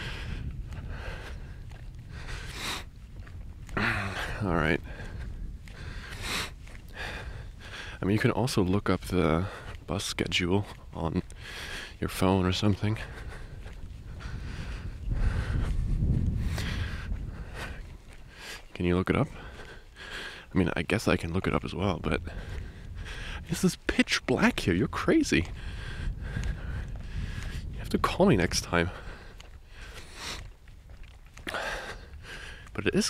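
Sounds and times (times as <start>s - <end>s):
man breathing: 0.0s - 2.9s, 3.7s - 8.0s, 11.4s - 12.0s, 13.0s - 18.7s, 19.3s - 20.5s, 22.3s - 23.5s, 25.4s - 27.8s, 28.9s - 30.6s, 31.4s - 32.7s
footsteps: 0.0s - 33.0s
wind rumbling on microphone: 0.0s - 33.0s.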